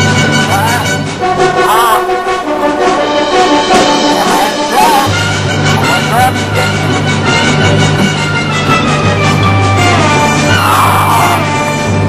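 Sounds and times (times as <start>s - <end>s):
orchestral music with brass: 0.0s - 12.0s.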